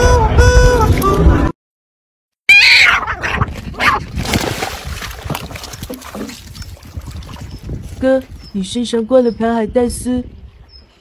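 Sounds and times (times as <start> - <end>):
cats yowling and growling: 2.5 - 4.0.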